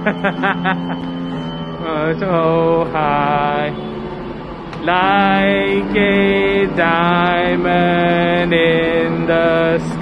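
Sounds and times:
people laughing: 0.0 - 1.2
steady electronic note: 0.0 - 10.0.

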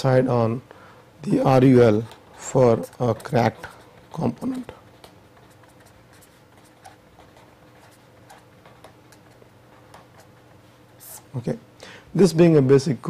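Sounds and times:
marker pen scratching on paper: 1.4 - 11.3.

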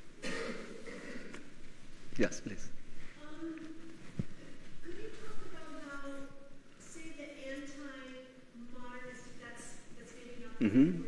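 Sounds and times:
person clearing throat: 0.2 - 1.4, 10.6 - 11.0.

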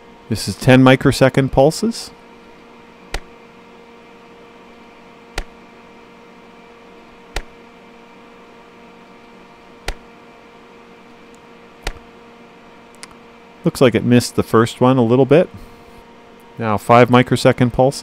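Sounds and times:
steady electrical hum: 0.0 - 18.0.

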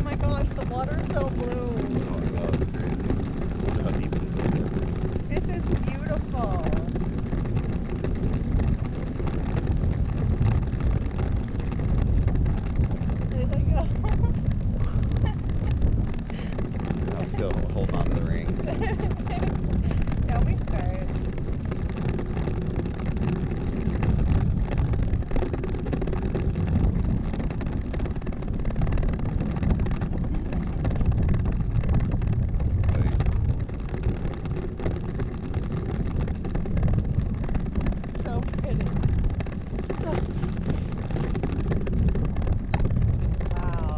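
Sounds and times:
faint voices: 0.0 - 4.2, 16.3 - 21.1
wind buffeting microphone: 0.0 - 43.9.

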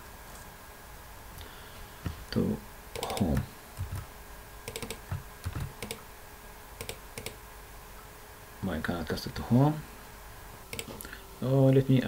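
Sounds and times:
computer keyboard typing: 3.0 - 4.1, 4.7 - 6.0, 6.8 - 7.4, 10.7 - 10.9.

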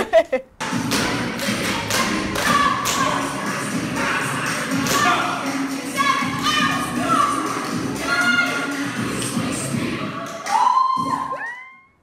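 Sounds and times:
music playing: 0.6 - 11.7.

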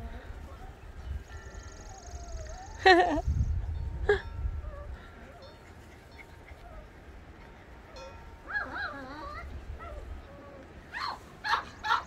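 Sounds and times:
puppies yelping: 4.7 - 12.0.

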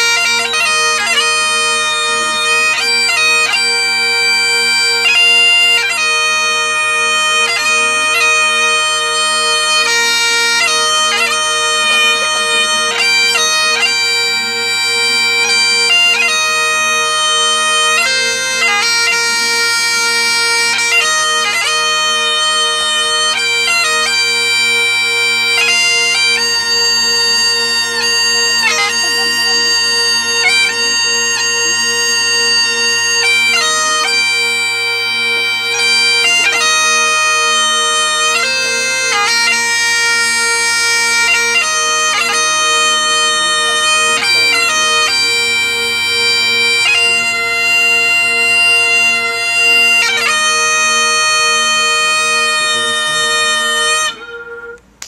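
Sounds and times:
bagpipes playing slow melody: 0.0 - 55.0.

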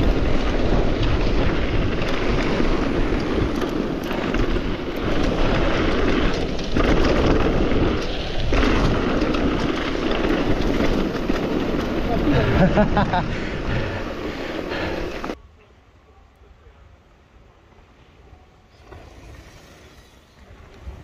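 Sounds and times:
bike rattling: 0.0 - 15.4, 18.8 - 21.0
tyres rolling on loose dirt: 0.0 - 15.4, 18.7 - 21.0
wind rushing over microphone: 0.0 - 15.4.

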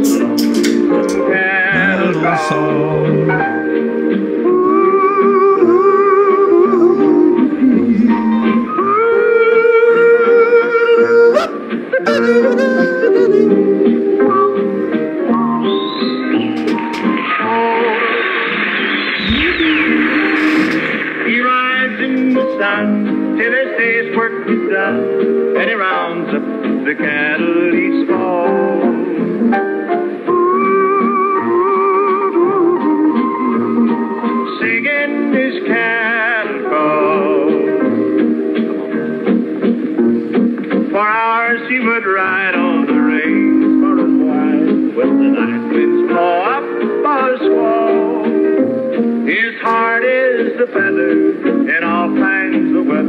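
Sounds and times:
acoustic guitar and band: 0.0 - 53.0
man yodeling: 1.7 - 3.5, 4.5 - 13.9.

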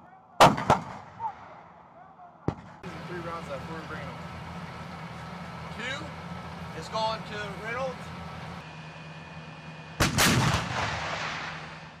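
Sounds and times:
howitzer firing blast: 0.4 - 1.5, 10.0 - 12.0
vehicle engine running: 2.6 - 12.0.

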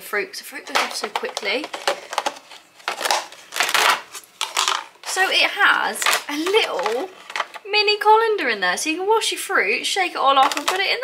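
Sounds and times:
plastic rustling and scraping: 0.6 - 7.7, 10.4 - 10.9.

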